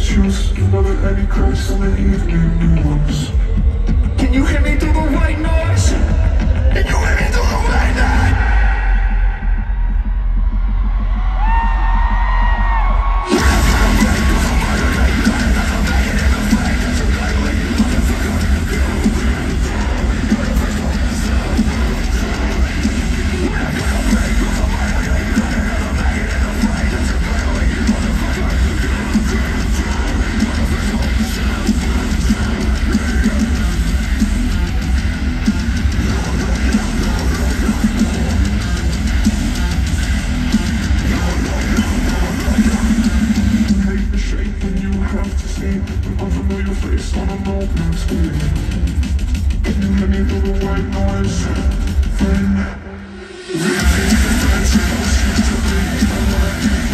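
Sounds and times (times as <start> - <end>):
live metal band: 0.0 - 56.9.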